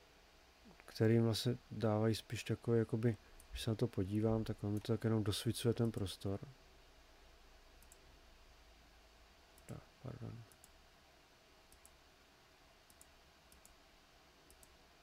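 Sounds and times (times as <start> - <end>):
faint computer mouse clicks: 7.8 - 8.0, 10.5 - 10.8, 11.7 - 12.0, 12.9 - 13.8, 14.5 - 14.8.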